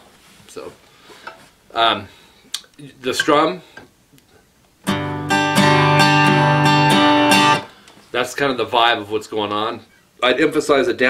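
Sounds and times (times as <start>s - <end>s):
acoustic guitar strumming: 4.8s - 7.8s.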